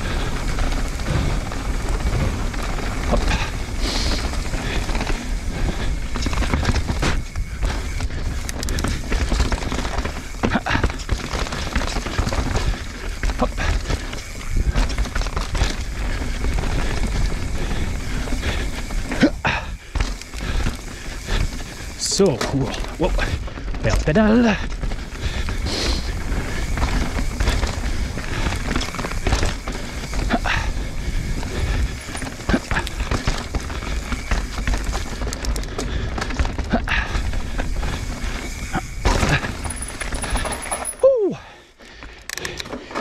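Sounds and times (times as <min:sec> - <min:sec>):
bike rattling over rocks: 0:00.0 - 0:43.0
wind and tyres on dirt: 0:00.0 - 0:43.0.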